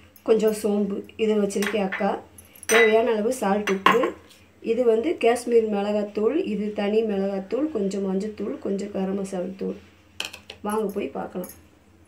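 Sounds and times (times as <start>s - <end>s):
person talking: 0.3s - 5.5s
dishes and spoon clinking: 1.6s - 4.2s.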